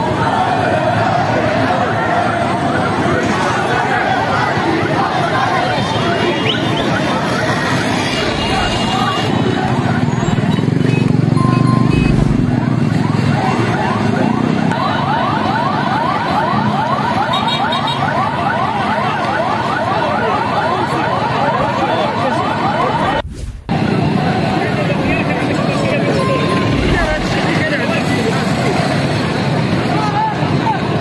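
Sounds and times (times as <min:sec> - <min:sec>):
crowd: 0:00.0 - 0:31.0
street noise: 0:00.0 - 0:31.0
motorbike engine: 0:07.6 - 0:13.5
electronic whooping alarm: 0:11.3 - 0:12.7, 0:26.2 - 0:27.6.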